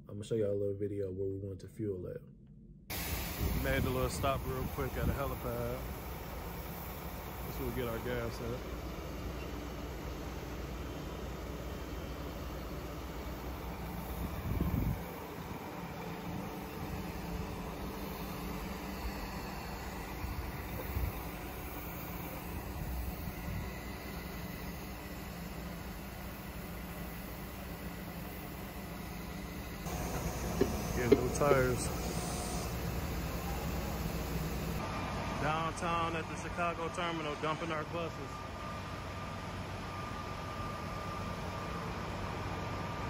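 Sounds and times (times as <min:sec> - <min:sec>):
bus diesel engines idling: 0:02.9 - 0:43.0
low buffet: 0:29.9 - 0:34.8.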